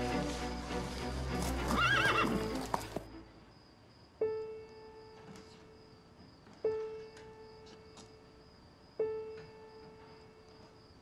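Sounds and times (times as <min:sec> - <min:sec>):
background music: 0:00.0 - 0:03.4
horse whinnying: 0:01.4 - 0:02.9.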